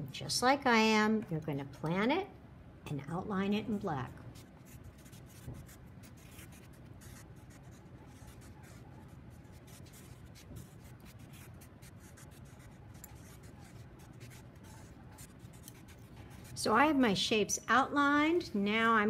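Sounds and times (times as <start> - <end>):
marker scratching on paper: 4.4 - 16.6.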